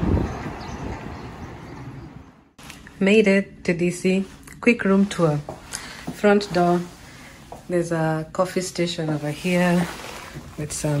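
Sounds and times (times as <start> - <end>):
city street traffic: 0.0 - 2.6.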